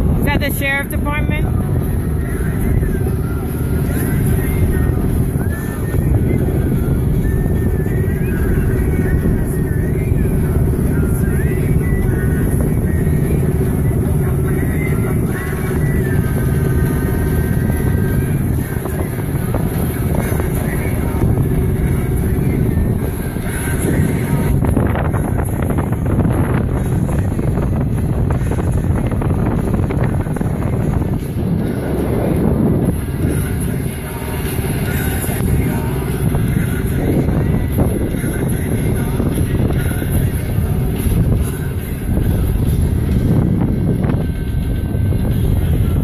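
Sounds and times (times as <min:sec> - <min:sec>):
boat engine rumble: 0:00.0 - 0:46.0
wind on microphone: 0:00.0 - 0:46.0.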